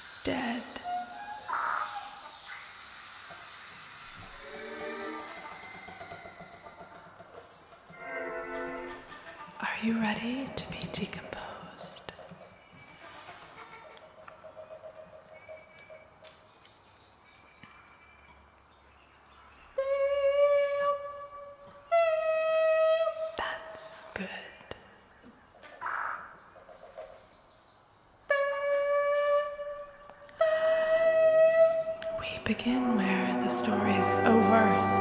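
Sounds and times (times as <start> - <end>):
wind instrument long notes: 4.2 - 7.0, 7.9 - 9.4, 19.8 - 23.4, 28.3 - 35.0.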